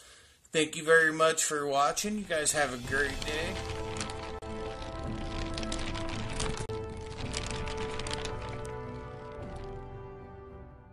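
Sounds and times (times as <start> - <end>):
theme music with held notes: 2.5 - 10.9.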